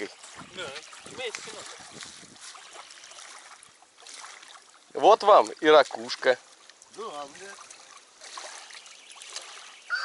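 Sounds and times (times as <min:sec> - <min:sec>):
small waves lapping: 0:00.0 - 0:10.0.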